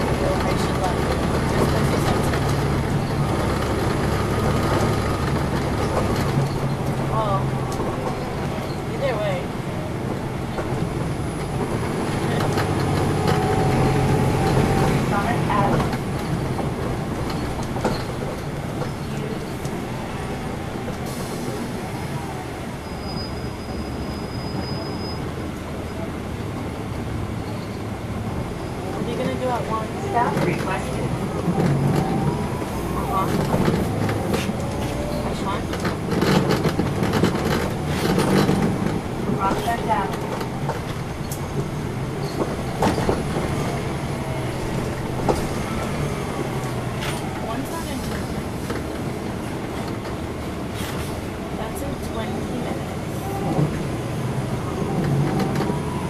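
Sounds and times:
bus diesel engine: 0:00.0 - 0:56.0
road noise: 0:00.0 - 0:56.0
indistinct voices: 0:28.8 - 0:48.6.

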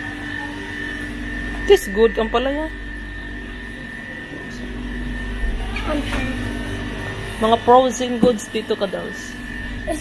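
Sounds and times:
freezers humming: 0:00.0 - 0:10.0
thin high whine: 0:00.0 - 0:10.0.

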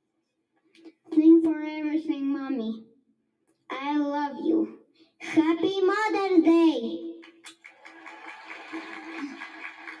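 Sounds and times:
audience applauding: 0:07.4 - 0:10.0.

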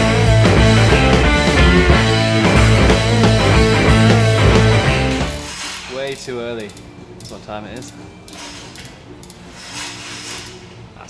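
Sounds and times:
rock music: 0:00.0 - 0:05.6.

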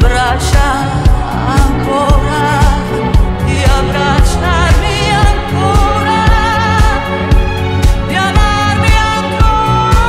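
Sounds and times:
pop song drum beat and bass: 0:00.0 - 0:10.0
woman singing with vibrato: 0:00.0 - 0:10.0.

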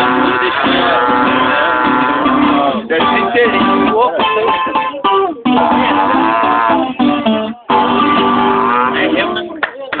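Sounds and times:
horn low notes: 0:00.0 - 0:03.6, 0:04.4 - 0:09.4
acoustic guitar strumming: 0:00.0 - 0:09.6.

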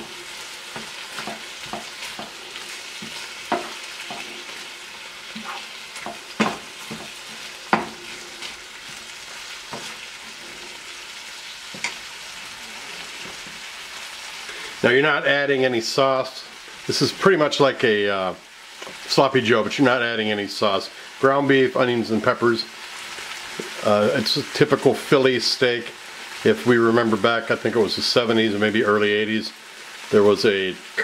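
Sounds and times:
wooden spoon scraping a pan: 0:00.0 - 0:14.4
meat and vegetables sizzling: 0:00.0 - 0:31.0.

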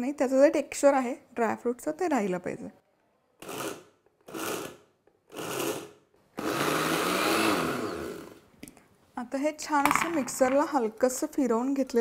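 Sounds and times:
mixer grinder motor: 0:05.3 - 0:08.4.

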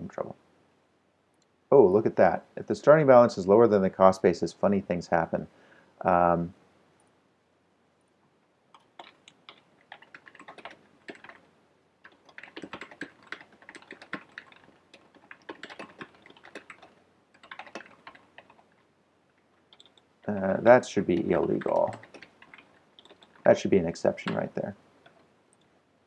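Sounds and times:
computer keyboard typing: 0:08.8 - 0:18.8, 0:19.6 - 0:23.7.

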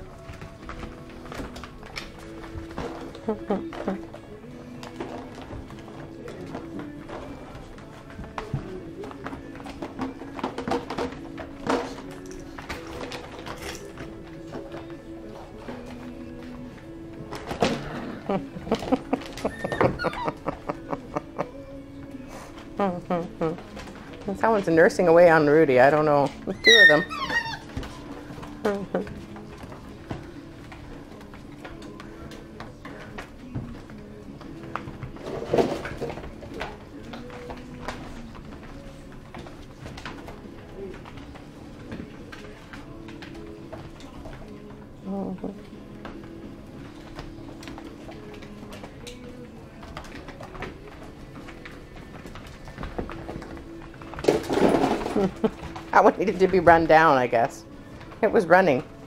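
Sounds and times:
woman laughing: 0:03.2 - 0:04.0, 0:18.0 - 0:21.7, 0:28.6 - 0:29.1, 0:55.1 - 0:55.6
puppies whimpering and grunting: 0:17.9 - 0:21.6, 0:26.4 - 0:29.2
puppies whimpering: 0:19.4 - 0:20.8, 0:26.4 - 0:28.1.

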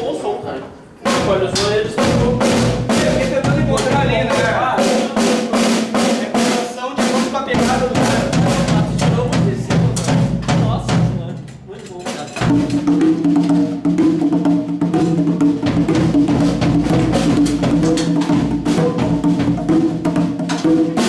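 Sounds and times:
toddler banging on drums: 0:01.0 - 0:21.0.

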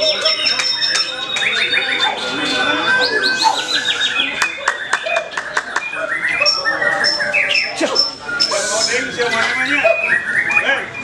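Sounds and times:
bird singing whistled notes: 0:00.0 - 0:11.0.

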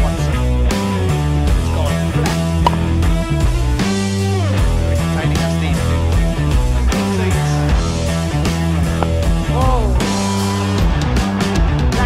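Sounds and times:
rock music with guitar: 0:00.0 - 0:12.0.

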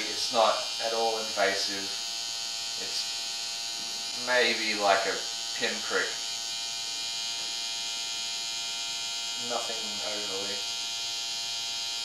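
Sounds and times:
tattoo machine buzzing: 0:00.0 - 0:12.0.

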